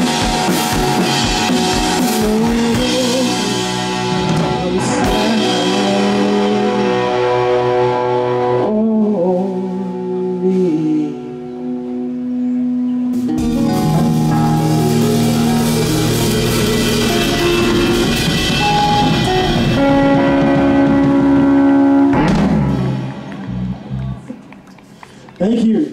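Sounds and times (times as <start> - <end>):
live rock band playing: 0.0 - 25.1.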